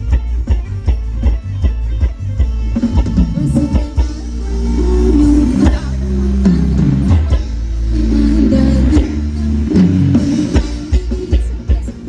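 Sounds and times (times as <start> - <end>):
held bass notes: 0.0 - 12.0
live band playing dance music: 0.0 - 12.0
sharp drum beats: 0.0 - 12.0.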